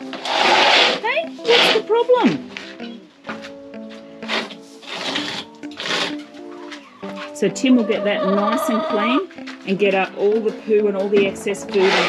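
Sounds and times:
hen squawking: 6.5 - 9.3.

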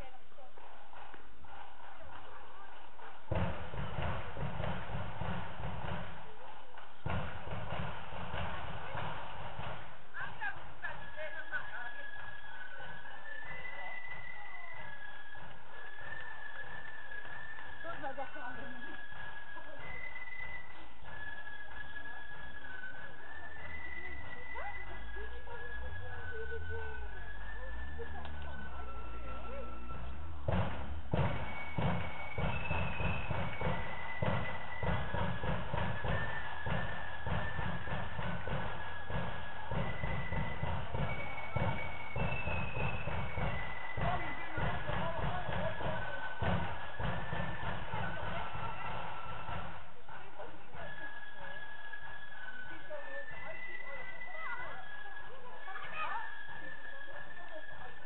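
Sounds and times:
drums beating march rhythm: 0.0 - 58.0
flutes playing a melody: 0.0 - 58.0.

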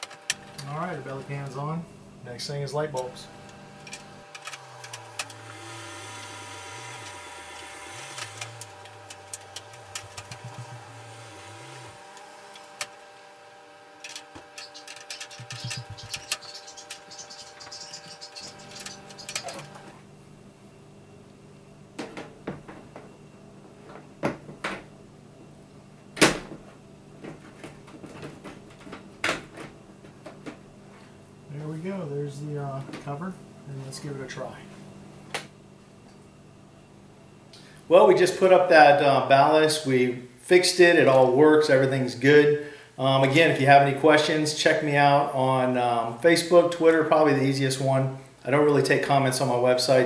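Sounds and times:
steady hum: 0.0 - 50.0.

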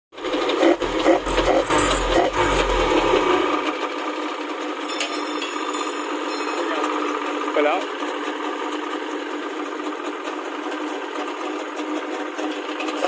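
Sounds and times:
jet ski engine running: 0.2 - 4.4.

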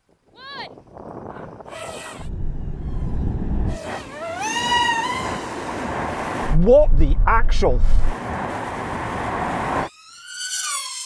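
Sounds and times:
electric motor whine: 1.7 - 6.4
tyres rumbling on wet road: 5.2 - 9.8.

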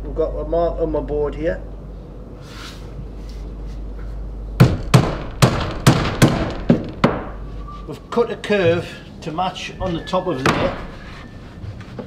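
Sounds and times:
hammer striking nail into wood: 4.6 - 7.4.

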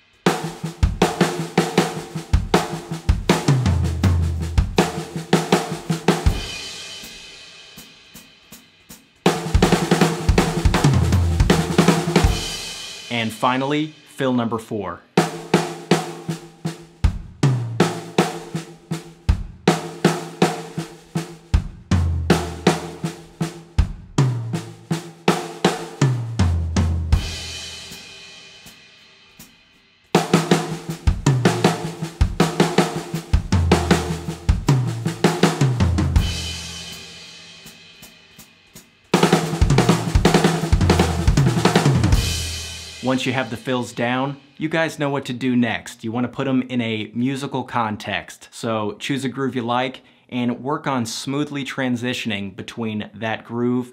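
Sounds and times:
drum fill on snare toms and bass: 0.0 - 14.4, 15.2 - 29.5, 30.1 - 44.9.

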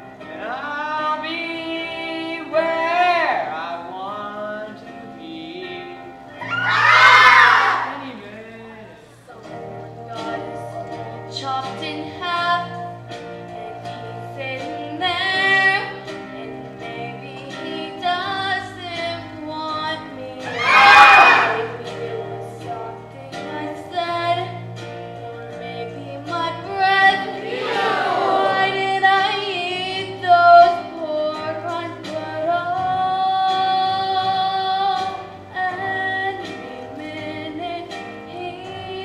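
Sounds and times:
young voices shouting together: 6.4 - 8.1, 20.4 - 21.8, 27.4 - 28.8
young voices singing: 6.4 - 8.3, 13.6 - 24.6, 25.5 - 39.0
instrumental accompaniment: 9.4 - 39.0.

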